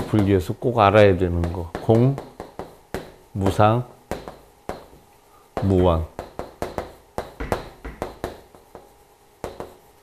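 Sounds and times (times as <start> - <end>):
chalk tapping on chalkboard: 0.0 - 5.0, 5.6 - 10.0.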